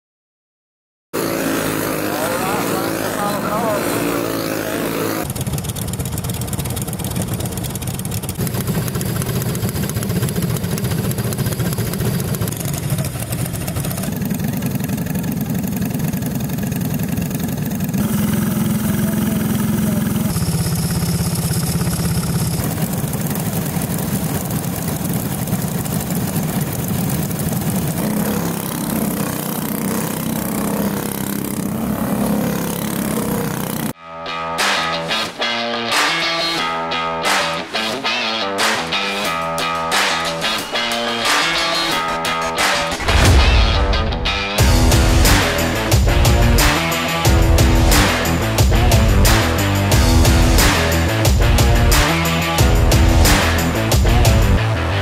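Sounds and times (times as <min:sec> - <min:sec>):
go-kart engines droning: 0:01.2 - 0:34.0.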